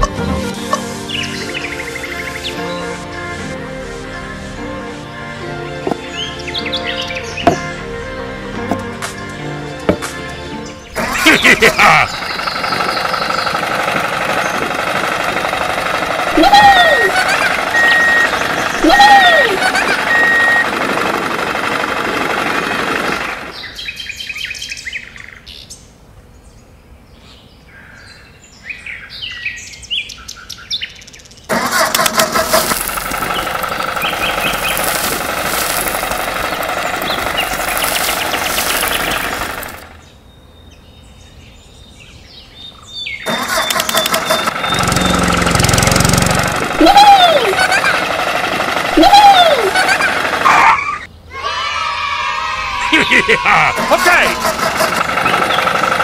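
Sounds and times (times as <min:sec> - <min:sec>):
tractor engine running: 0:08.5 - 0:23.8, 0:31.5 - 0:40.0, 0:43.3 - 0:51.1, 0:53.0 - 0:56.0
rising and falling chirps: 0:16.7 - 0:20.8.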